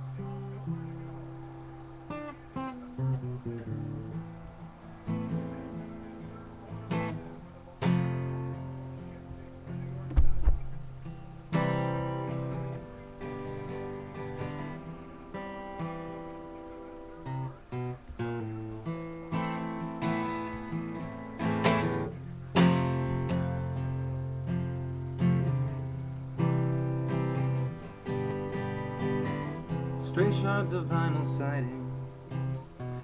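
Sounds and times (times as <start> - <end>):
acoustic guitar strummed: 0.0 - 33.0.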